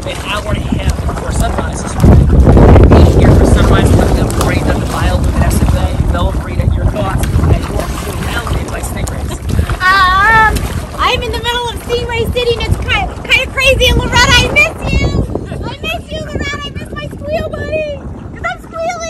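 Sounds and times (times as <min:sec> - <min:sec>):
water splashing: 0:00.0 - 0:19.0
wind rumbling on microphone: 0:00.0 - 0:19.0.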